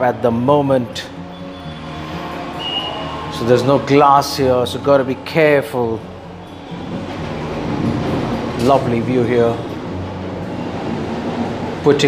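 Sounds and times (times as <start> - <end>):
distant traffic: 0.0 - 12.0.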